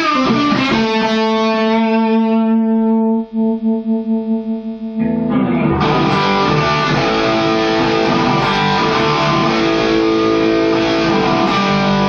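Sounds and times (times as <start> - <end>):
overdriven electric guitar note: 0.0 - 12.0.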